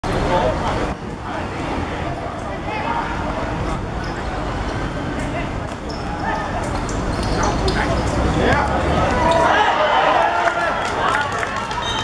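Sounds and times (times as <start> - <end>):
people shouting and cheering: 8.4 - 12.0.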